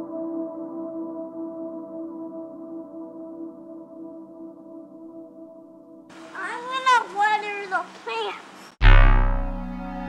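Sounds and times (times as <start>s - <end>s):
child's high calls: 6.4s - 8.5s
loud low musical chord: 8.8s - 10.0s.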